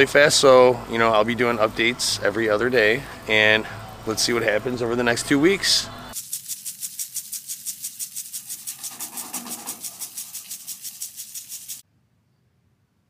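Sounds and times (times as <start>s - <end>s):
lawn sprinkler ticking: 6.2s - 11.8s.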